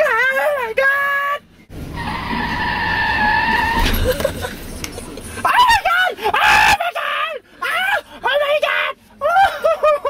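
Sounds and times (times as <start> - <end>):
car tyres screeching: 1.7 - 5.5.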